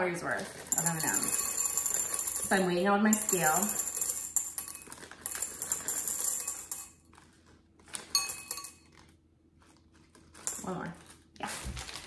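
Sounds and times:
candies rattling into glass bowl: 0.2 - 7.3.

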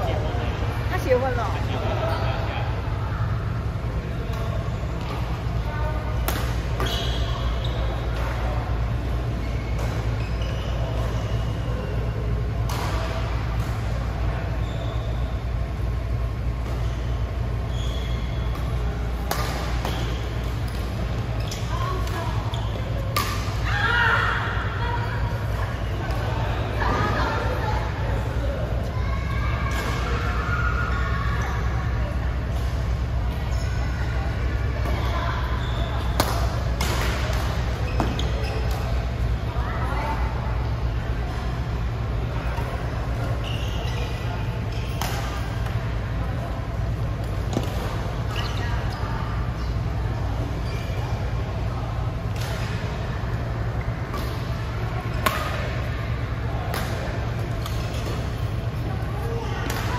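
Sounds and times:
low rumble of indoor hall: 0.0 - 59.9
players' voices: 0.0 - 59.9
steady low hum: 0.0 - 59.9
shoe squeaks on court: 6.8 - 8.0, 9.4 - 11.6, 16.8 - 18.5, 37.8 - 38.9, 43.4 - 45.4
racket hitting shuttlecock: 19.2 - 20.9, 54.1 - 55.9.

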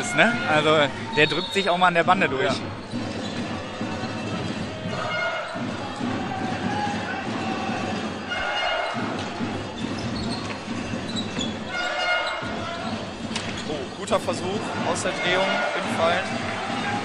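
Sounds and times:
voices echoing in a large hall: 0.0 - 17.0.

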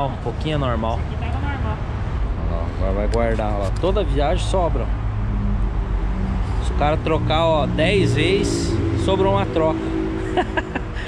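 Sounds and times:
man speaking: 2.4 - 5.0, 6.6 - 9.8.

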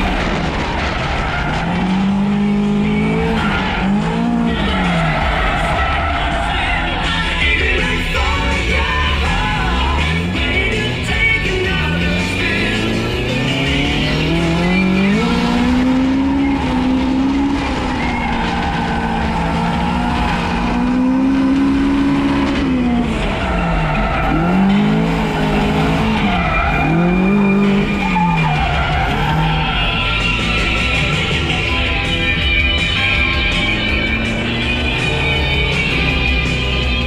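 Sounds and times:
car engine revving hard: 0.0 - 5.7, 7.5 - 37.0.

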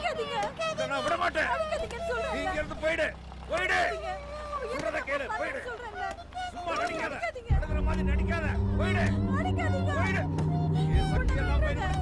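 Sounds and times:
low held drone: 7.5 - 12.0
overlapping wavering voices: 7.5 - 12.0.

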